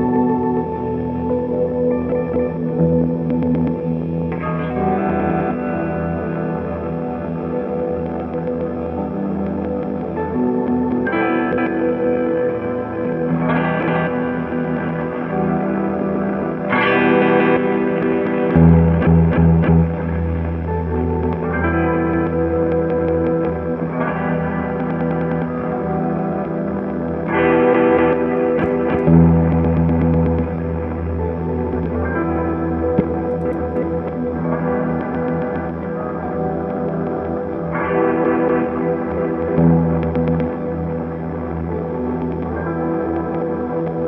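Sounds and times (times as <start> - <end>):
ambient electric guitar chords: 0.0 - 44.0.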